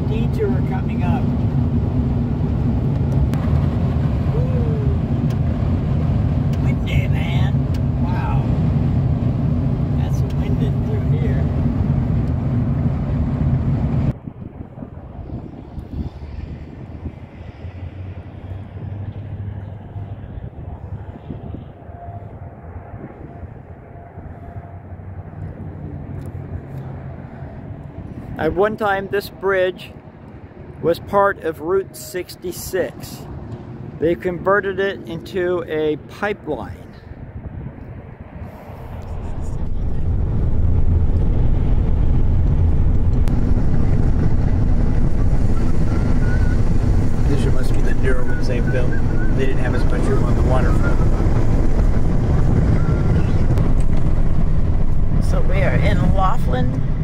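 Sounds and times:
dull outdoor background noise: 0.0s - 57.0s
road and engine rumble: 0.0s - 57.0s.

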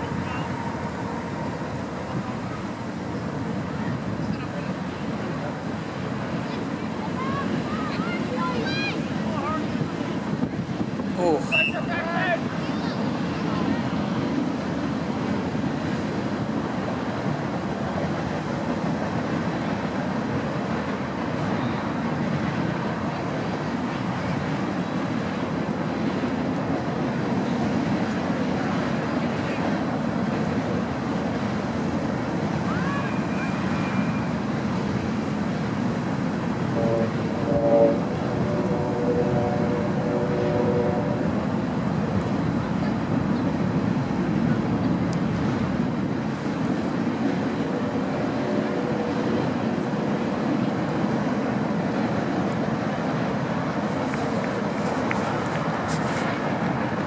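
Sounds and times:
wind rumble on microphone: 0.0s - 57.0s.

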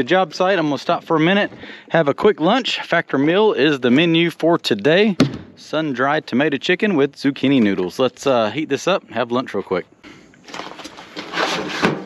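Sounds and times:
cardboard sleeve sliding off plastic tray: 10.5s - 12.0s.

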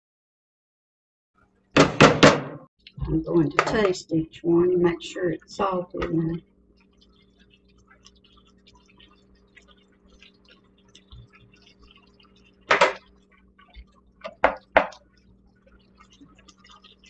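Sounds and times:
cheese sauce simmering and popping: 2.8s - 17.0s
sharp noises: 2.8s - 17.0s
steady low hum: 2.8s - 17.0s.

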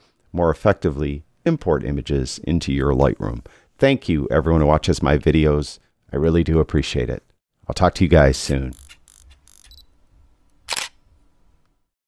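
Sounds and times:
camera shutter click: 10.7s - 11.0s.

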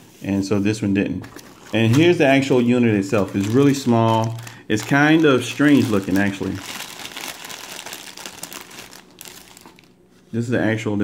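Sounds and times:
plastic bag crinkling: 1.6s - 10.0s.

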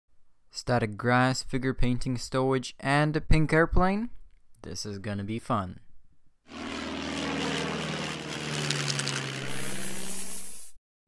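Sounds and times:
propeller aircraft engine drone: 6.5s - 10.8s
hiss: 9.4s - 10.8s.

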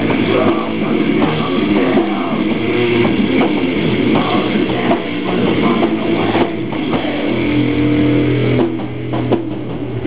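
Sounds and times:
distorted guitar and bass chord: 0.0s - 10.0s
live metal band playing: 0.0s - 10.0s.

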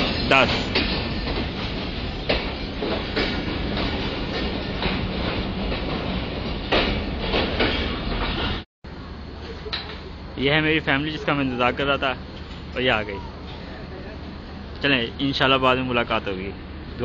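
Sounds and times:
train wheels rumbling on rails: 0.0s - 8.7s.

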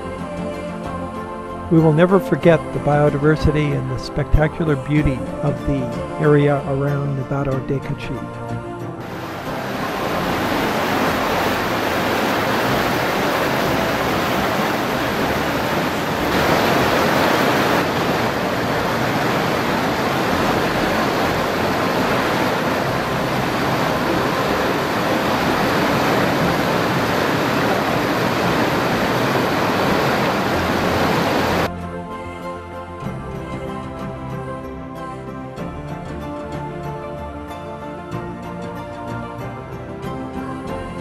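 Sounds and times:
stream rushing over stones: 9.0s - 31.7s.

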